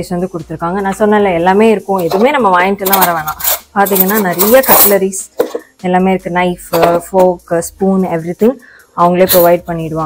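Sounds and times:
cutlery clinking in drawer: 0:02.0 - 0:05.6.

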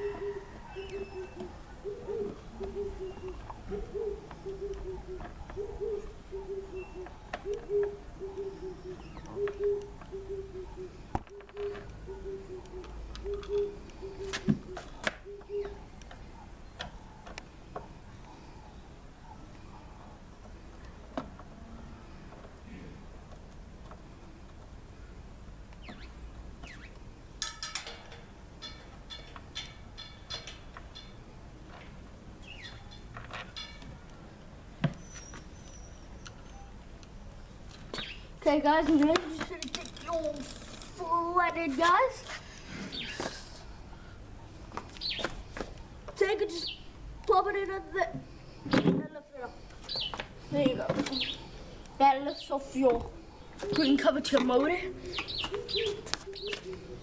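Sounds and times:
dove cooing: 0:00.0 - 0:20.3, 0:53.1 - 0:54.2, 0:54.8 - 0:57.0.

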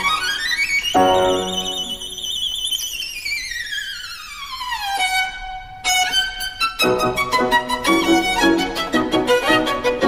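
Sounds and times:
solo violin: 0:00.0 - 0:10.0.

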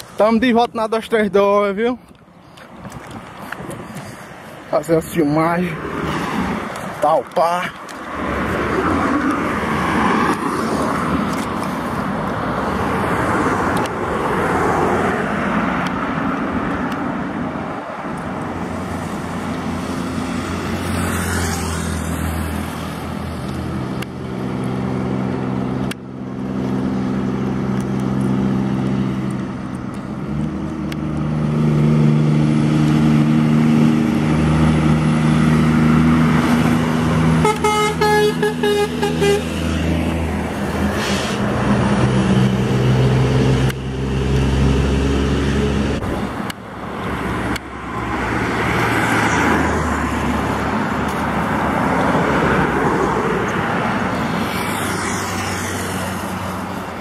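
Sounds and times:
tyre and road noise: 0:00.0 - 0:57.0
truck engine drone: 0:15.2 - 0:57.0
truck air horn blasts: 0:37.4 - 0:39.7.

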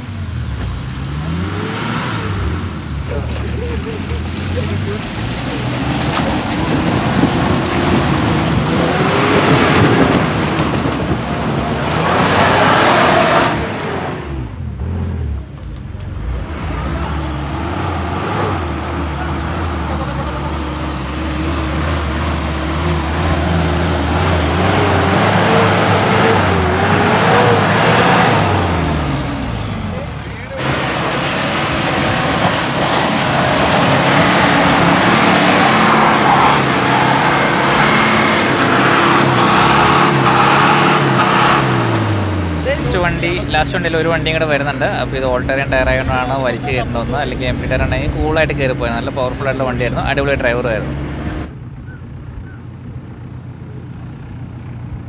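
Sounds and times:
off-road engines revving: 0:00.0 - 0:55.0.

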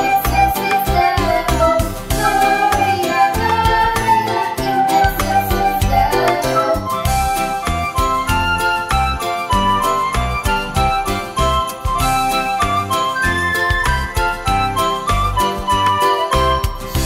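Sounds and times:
instrumental christmas music: 0:00.0 - 0:17.0.

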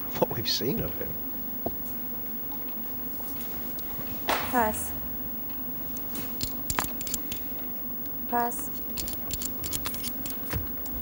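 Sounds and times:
steady low hum: 0:00.0 - 0:11.0
poker chips and cards clicking: 0:06.4 - 0:07.4, 0:09.0 - 0:10.4.

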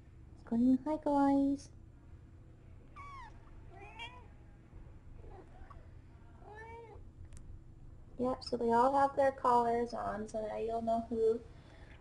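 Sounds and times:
kitten mewing: 0:03.0 - 0:04.3.

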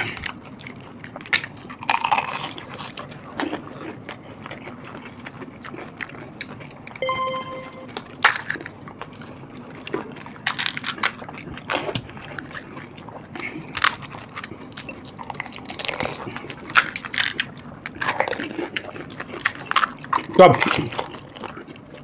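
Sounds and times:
chewing: 0:02.0 - 0:06.2.

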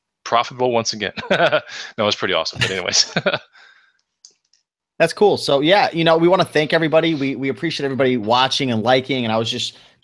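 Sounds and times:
man laughing: 0:01.1 - 0:01.9, 0:02.6 - 0:03.6.

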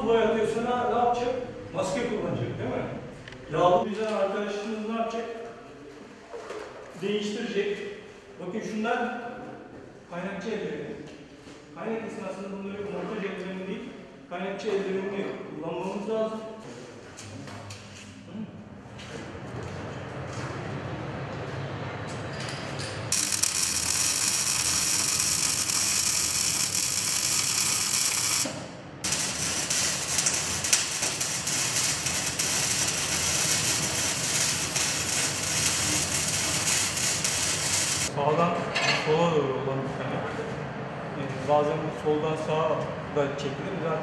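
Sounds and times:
workshop noise: 0:17.0 - 0:39.2
welding arc crackling hiss: 0:23.1 - 0:38.1.

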